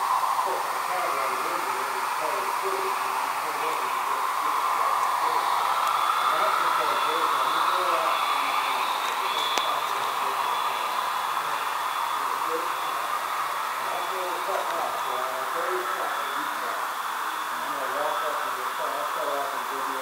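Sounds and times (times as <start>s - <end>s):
faint voices: 0.0s - 20.0s
model train running on track: 0.0s - 20.0s.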